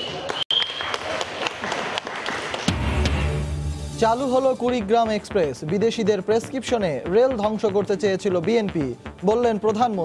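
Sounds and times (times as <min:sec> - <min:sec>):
crowd applauding: 0:00.0 - 0:03.0
deep bass music sting: 0:02.7 - 0:05.0.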